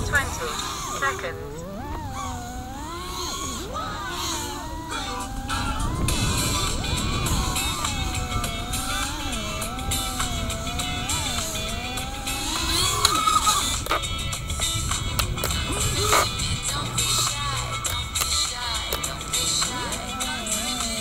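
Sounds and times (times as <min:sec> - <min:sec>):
drone motors whining: 0:00.0 - 0:21.0.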